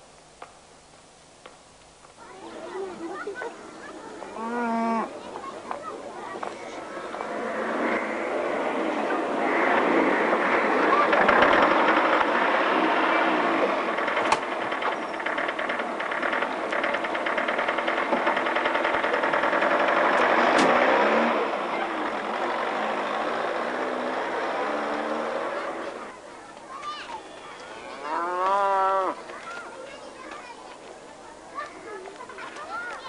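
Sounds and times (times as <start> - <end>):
bus engine running: 5.2 - 27.6.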